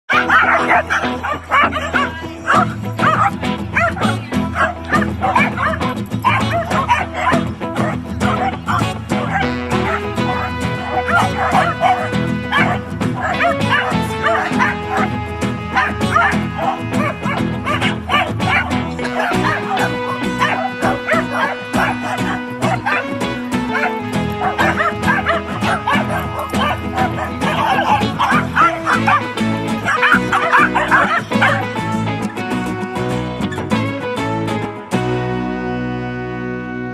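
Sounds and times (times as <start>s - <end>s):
dogs barking and yipping: 0.1s - 34.7s
background music: 0.1s - 36.9s.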